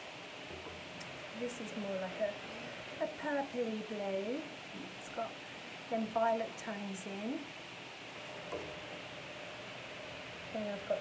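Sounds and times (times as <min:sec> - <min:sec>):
air conditioner hissing: 0:00.0 - 0:11.0.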